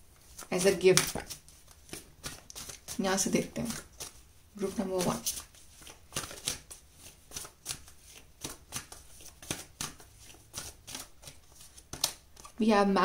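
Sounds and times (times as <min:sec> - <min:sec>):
cards being shuffled: 0:00.2 - 0:12.6.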